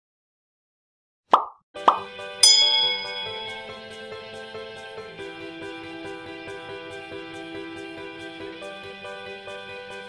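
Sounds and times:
short pop sound effects: 1.3s - 2.1s.

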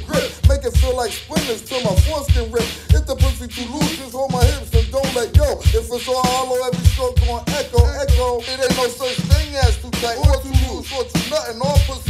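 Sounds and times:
heavy bass kick: 0.0s - 1.1s, 1.9s - 3.8s, 4.4s - 6.1s, 6.8s - 8.4s, 9.3s - 10.8s, 11.7s - 12.0s
rapping over a beat: 0.0s - 12.0s.

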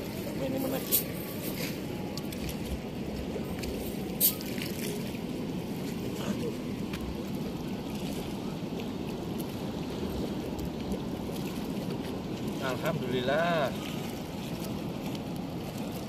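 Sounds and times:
water rushing through weir gates: 0.0s - 16.0s.

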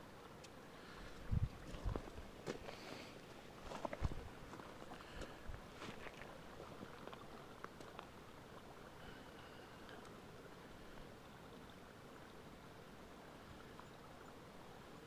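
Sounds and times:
footsteps on grass: 3.6s - 6.3s
faint clicks: 9.8s - 10.2s.

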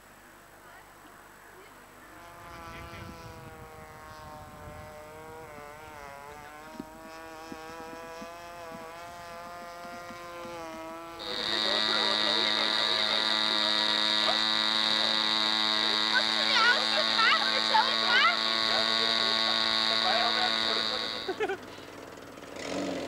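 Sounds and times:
loud buzz with high whine: 1.8s - 21.6s
model aircraft engine buzzing: 1.8s - 23.0s.

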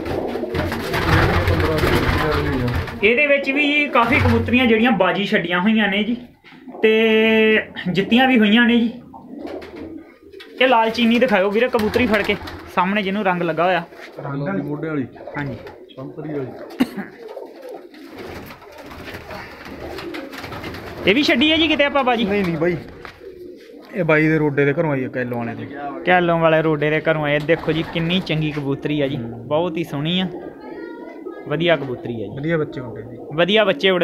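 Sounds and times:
pigeons cooing: 0.0s - 34.0s
person speaking: 0.9s - 9.1s, 10.5s - 17.1s, 21.0s - 34.0s.

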